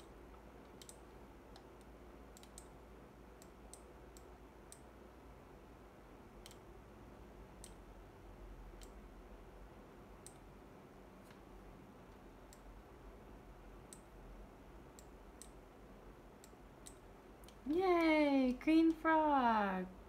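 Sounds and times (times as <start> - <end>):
computer mouse clicking: 0.0 - 2.8, 6.4 - 6.7, 7.6 - 7.8, 8.8 - 9.0, 10.2 - 10.5, 13.9 - 14.1, 14.9 - 15.6, 16.4 - 17.6
faint low hum: 0.0 - 20.0.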